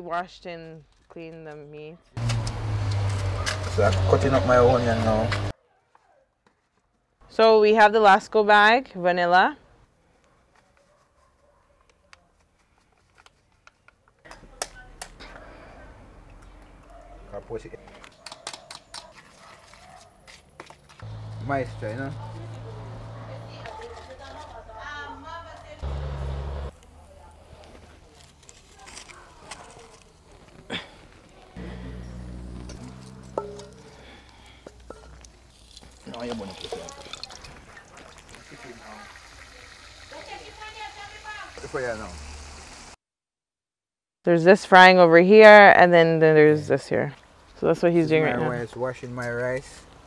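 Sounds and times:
indistinct voices talking: 21.0s - 28.0s, 31.5s - 34.2s
low hum: 31.6s - 34.5s
chicken frying in oil: 35.5s - 43.0s.

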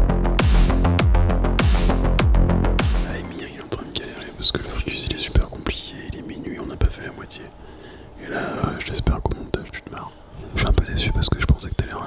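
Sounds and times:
people whispering: 3.0s - 12.0s.

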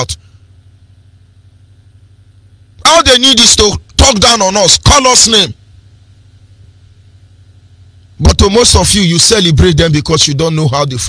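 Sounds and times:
faint low hum: 0.0s - 11.0s
man's voice: 2.8s - 5.6s, 8.2s - 11.0s.

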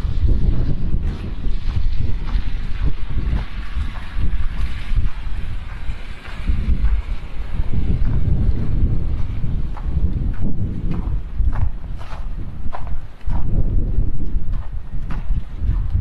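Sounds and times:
footsteps crunching in snow: 0.0s - 16.0s
wind buffeting microphone: 0.0s - 16.0s.

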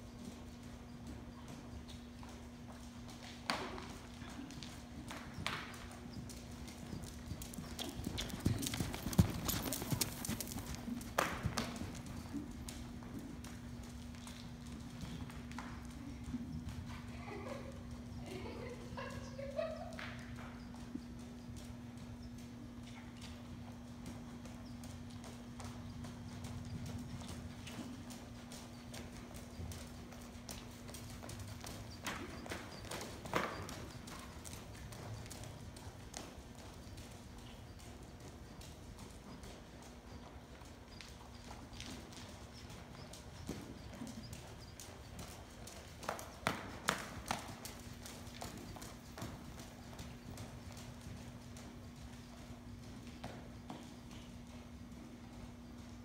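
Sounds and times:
horse hooves trotting on sand: 0.0s - 56.0s
steady low hum: 0.0s - 56.0s.

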